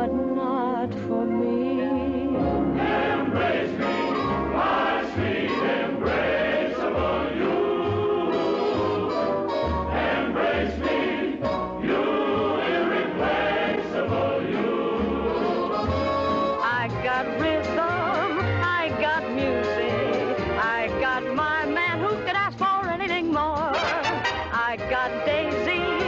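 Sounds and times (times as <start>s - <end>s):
chorus singing with band: 2.5s - 16.0s.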